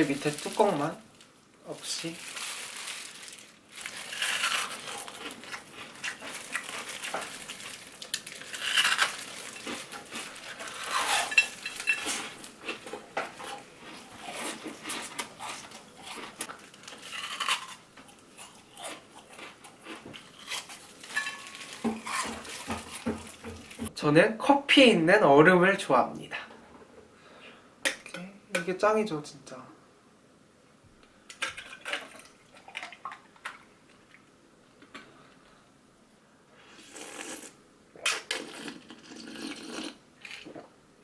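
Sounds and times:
ice cracking and crunching: 0.0 - 1.0, 1.8 - 12.8.

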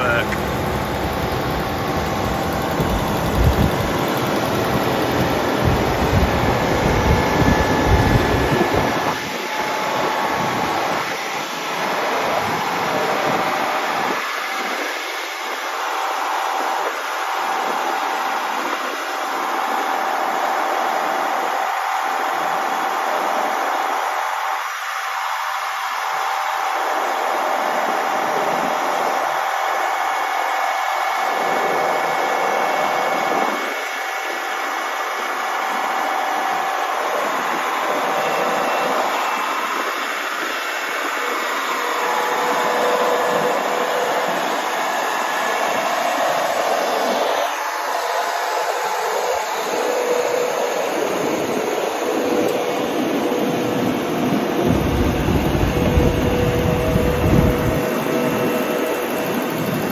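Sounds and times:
trencher engine and digging gear: 0.0 - 9.3, 52.2 - 59.9
faint high whine: 0.0 - 59.9.

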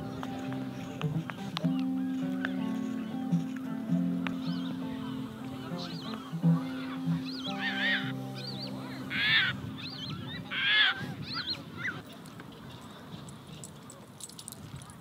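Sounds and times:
soft music of low held notes: 0.0 - 10.6
large birds calling: 0.0 - 13.9
loud harsh bird calls: 4.4 - 12.1.

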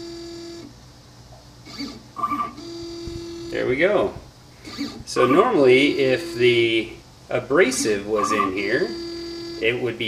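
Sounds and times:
stepper motor whine: 0.0 - 0.7, 1.6 - 10.0.

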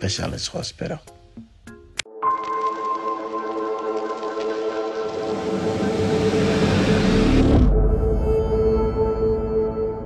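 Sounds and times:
sustained synth tone: 3.0 - 10.0.

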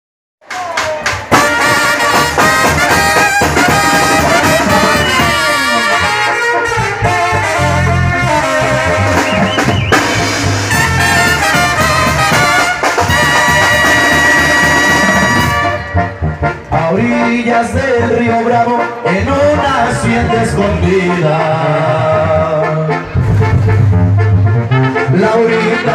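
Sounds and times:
drums: 0.4 - 16.8, 23.0 - 24.9
trumpets and trombones melody: 1.3 - 25.9
tuba: 1.3 - 25.9.

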